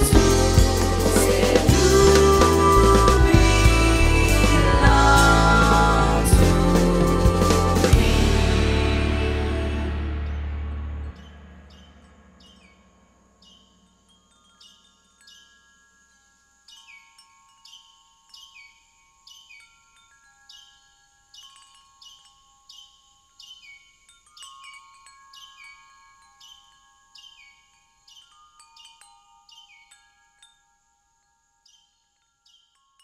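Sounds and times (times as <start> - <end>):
band chord: 0.0 - 12.4
wind chimes ringing: 0.0 - 33.0.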